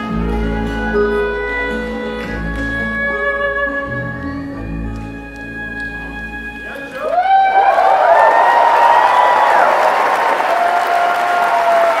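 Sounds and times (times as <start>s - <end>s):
audience applause and cheering: 6.8s - 12.0s.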